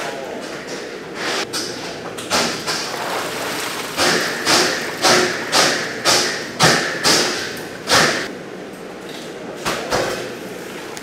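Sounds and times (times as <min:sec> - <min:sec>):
wire baskets knocking in metal tank: 0:01.5 - 0:08.3.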